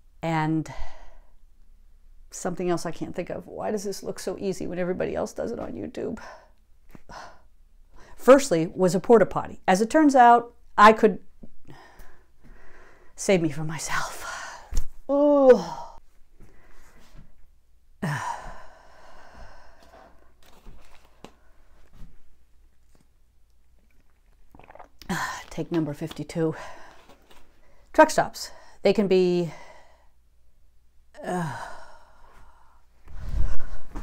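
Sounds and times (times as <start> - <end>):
woman sighing: 15.1 - 16.0, 18.0 - 19.8, 31.2 - 32.6.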